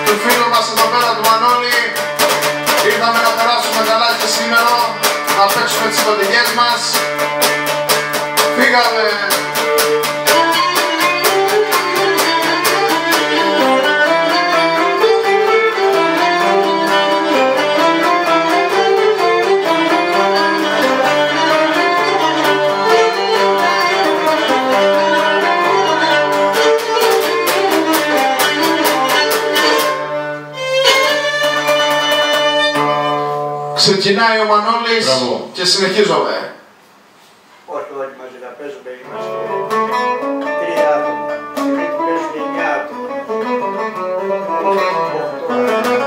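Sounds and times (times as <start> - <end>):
bowed lyra fast dance melody: 0.0 - 35.4, 39.2 - 46.0
lute strummed rhythmically: 0.0 - 37.1, 39.0 - 46.0.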